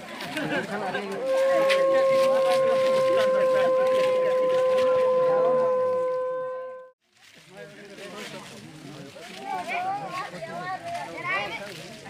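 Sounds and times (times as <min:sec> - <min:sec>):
crowd chatter: 0:00.0 - 0:12.0
long steady horn tone: 0:01.1 - 0:07.0.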